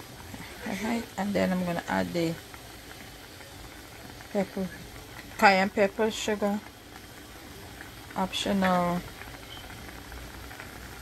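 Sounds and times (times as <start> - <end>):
sauce bubbling in a frying pan: 0.0 - 11.0.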